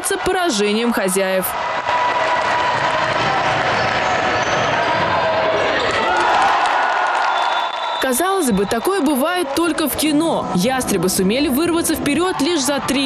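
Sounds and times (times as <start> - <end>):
crowd clapping: 0.0 - 10.0
crowd cheering and shouting: 0.0 - 13.0.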